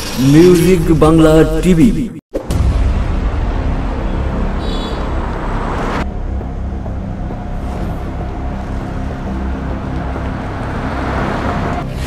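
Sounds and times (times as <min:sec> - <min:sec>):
car engine and tyre noise: 0:03.6 - 0:12.0.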